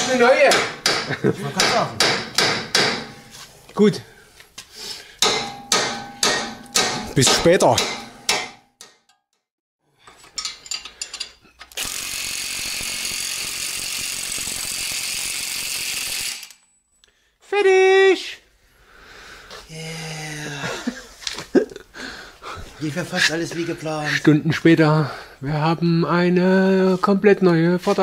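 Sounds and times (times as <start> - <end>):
impact wrench hammering: 0.0 - 3.3, 5.2 - 9.0, 11.7 - 16.6.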